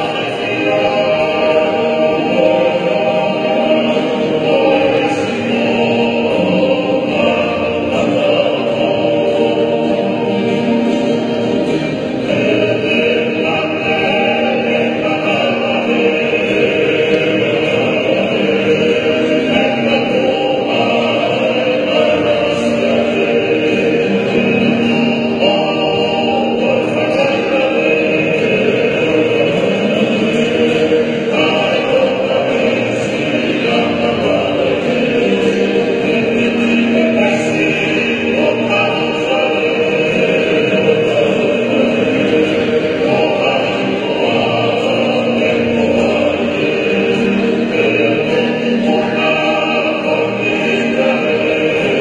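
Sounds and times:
lead singer: 0.0 - 52.0
male choir singing in harmony: 0.0 - 52.0
strummed acoustic guitars: 0.0 - 52.0.

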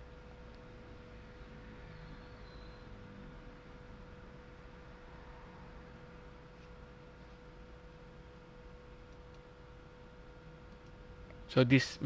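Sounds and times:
constant thin hum: 0.0 - 12.0.

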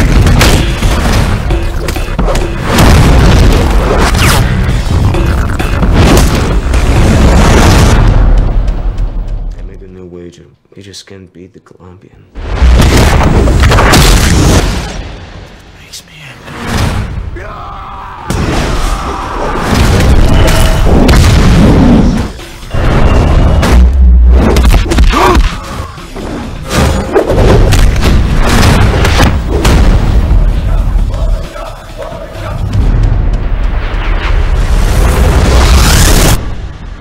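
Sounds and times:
deep booming cinematic hits: 0.0 - 9.6, 19.6 - 25.5, 26.6 - 31.2, 32.6 - 37.0
trailer music: 0.0 - 10.1, 12.4 - 37.0.

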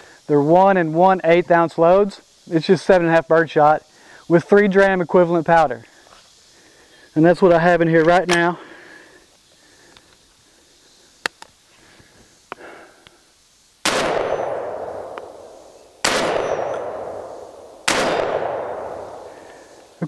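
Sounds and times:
shotgun shots: 13.8 - 19.8.

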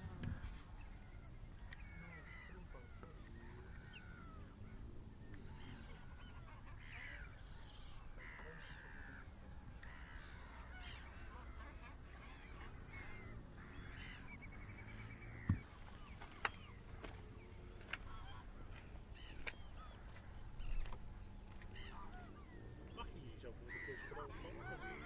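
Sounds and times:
gulls calling: 0.0 - 25.0.

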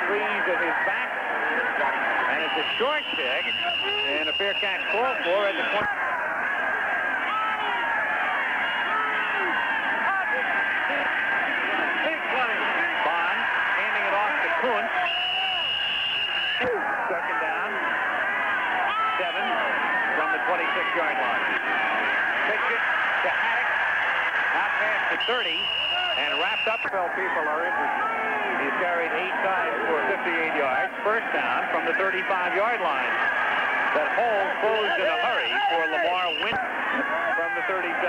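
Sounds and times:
stadium crowd cheering: 0.0 - 38.0.

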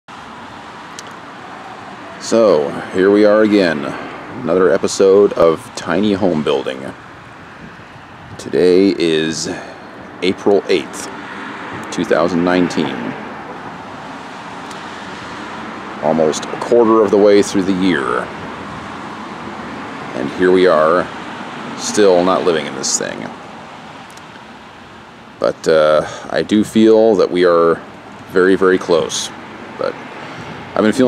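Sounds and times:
distant road traffic: 0.1 - 31.0
outdoor background hiss: 0.1 - 31.0.

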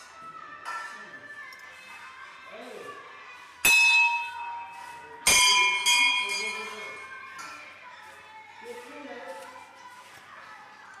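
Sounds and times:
temple bell ringing: 3.7 - 7.1.

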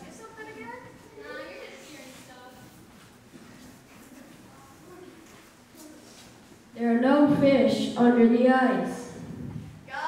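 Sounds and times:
murmur of voices in a hall: 0.0 - 10.0.

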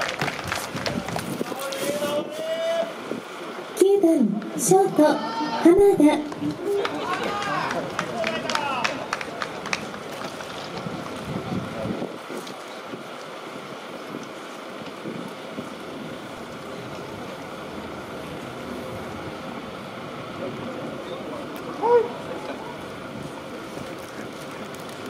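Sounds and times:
wind on microphone: 0.0 - 2.3, 10.7 - 14.3
voices: 0.0 - 14.4, 15.8 - 25.0
distant background noise: 0.0 - 25.0.

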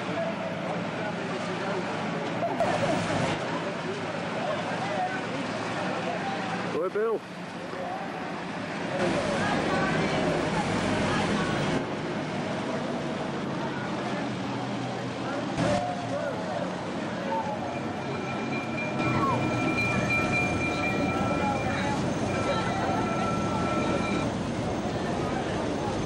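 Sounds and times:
onlookers chattering: 0.0 - 26.0
old vehicle engines driving past: 0.2 - 26.0
steady high tone: 17.1 - 25.2.

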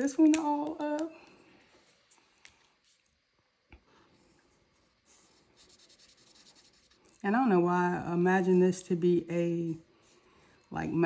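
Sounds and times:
marker scratching on paper: 4.8 - 7.2.

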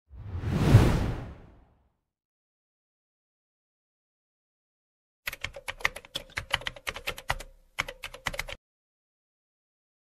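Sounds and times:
whoosh sound effect: 0.1 - 1.7.

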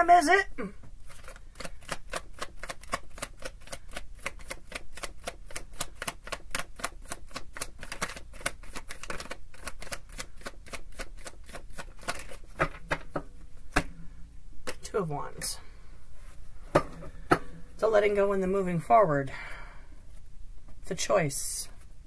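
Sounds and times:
cards being shuffled: 1.0 - 13.9.

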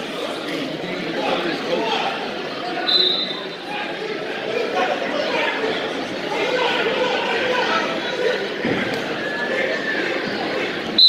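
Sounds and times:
spectators chattering and calling: 0.0 - 11.0
referee's whistle blast: 2.9 - 3.4.

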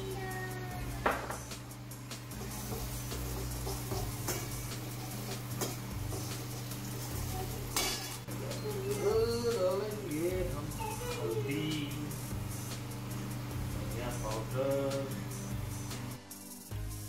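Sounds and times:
spoon stirring frying onions: 2.2 - 9.1.

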